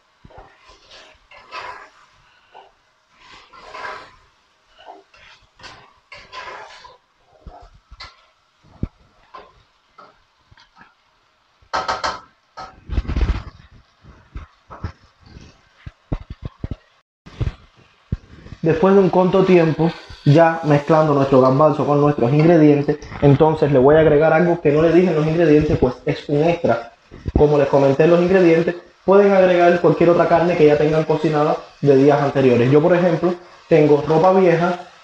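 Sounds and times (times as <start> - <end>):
spatula scraping a pot: 0.1 - 10.2.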